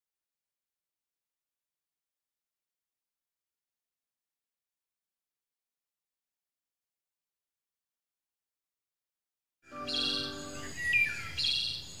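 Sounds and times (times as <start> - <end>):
held musical chord: 9.7 - 11.1
birds chirping: 9.7 - 12.0.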